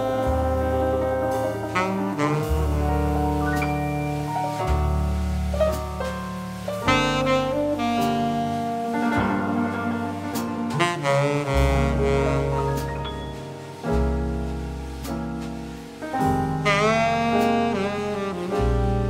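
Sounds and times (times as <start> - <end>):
saxophone melody: 0.0 - 5.1, 6.8 - 13.6, 16.6 - 19.0
jazz band playing: 0.0 - 19.0.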